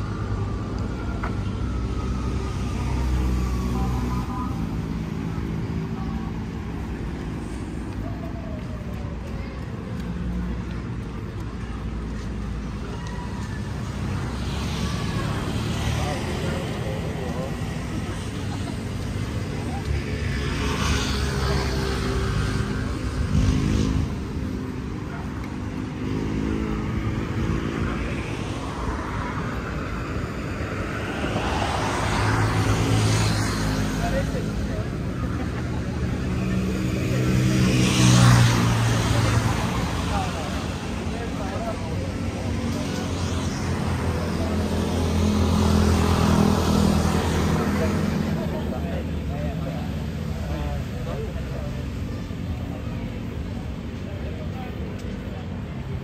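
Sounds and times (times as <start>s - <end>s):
vehicles passing: 0.0s - 56.0s
voices in background: 0.0s - 56.0s.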